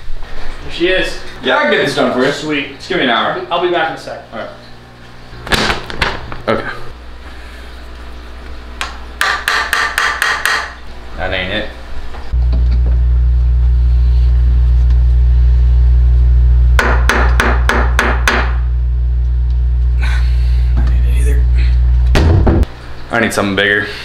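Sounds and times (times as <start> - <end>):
loud steady low drone: 12.3 - 22.7.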